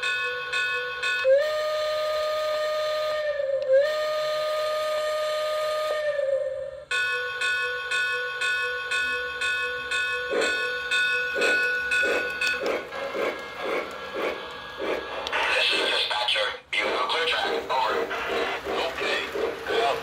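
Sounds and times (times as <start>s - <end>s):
locomotive bell ringing: 0.0s - 1.7s, 6.9s - 14.8s
steam whistle: 1.2s - 7.4s
steam chuffing: 10.2s - 20.0s.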